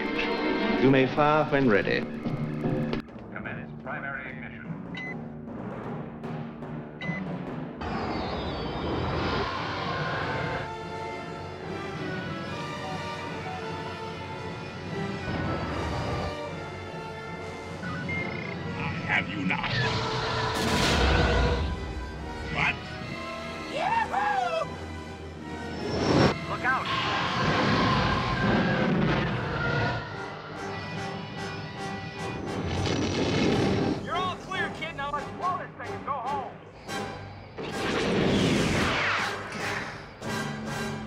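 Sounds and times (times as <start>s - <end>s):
short electronic beeps: 17.8s - 18.6s
sci-fi battle effects: 18.2s - 22.2s, 26.6s - 30.8s
orchestral music with timpani: 39.6s - 41.0s.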